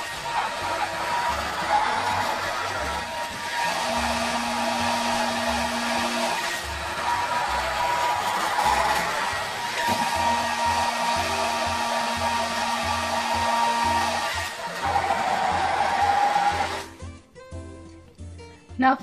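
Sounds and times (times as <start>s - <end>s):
hair dryer blowing: 0.0s - 17.1s
background music: 0.0s - 19.0s.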